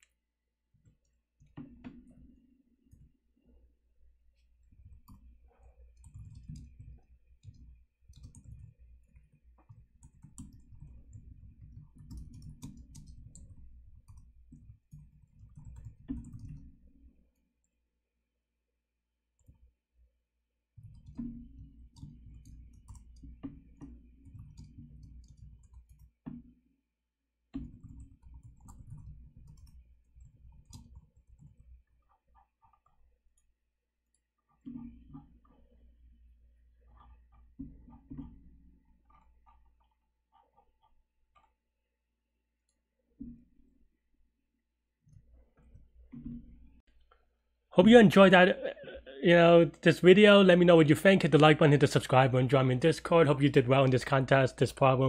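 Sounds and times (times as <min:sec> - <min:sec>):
computer keyboard typing: 0:06.0 - 0:16.8, 0:20.8 - 0:26.4, 0:27.6 - 0:33.5, 0:39.0 - 0:41.6
low voice sound: 0:47.8 - 0:55.0.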